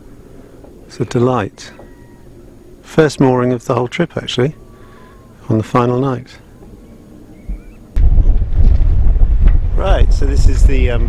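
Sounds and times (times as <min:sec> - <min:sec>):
wind buffeting microphone: 0:06.6 - 0:11.0.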